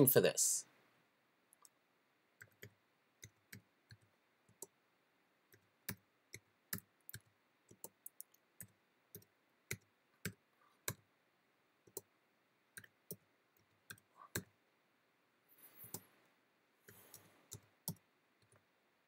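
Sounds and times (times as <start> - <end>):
computer keyboard keystrokes: 2.4 - 4.8, 5.5 - 11.0, 11.9 - 12.1, 16.9 - 18.6.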